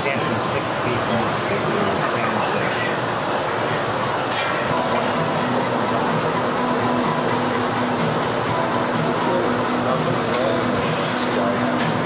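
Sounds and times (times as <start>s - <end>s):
gas burner roaring: 0.0s - 12.0s.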